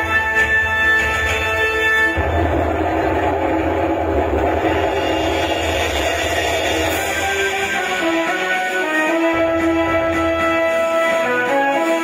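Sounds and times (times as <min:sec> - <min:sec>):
loud steady rumbling with deep hum: 0:02.1 - 0:07.6.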